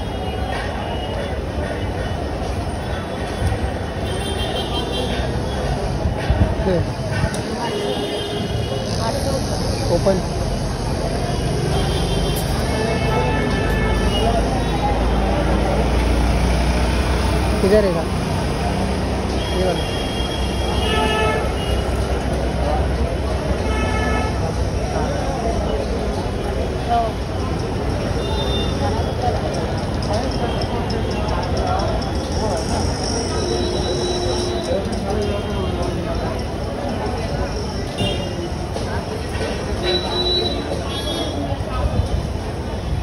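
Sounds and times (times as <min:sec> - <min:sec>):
busy street traffic: 0:00.0 - 0:43.0.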